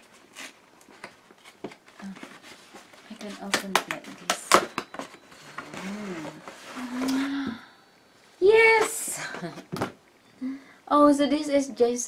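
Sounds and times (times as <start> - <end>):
cardboard scratching and rustling: 1.3 - 7.0.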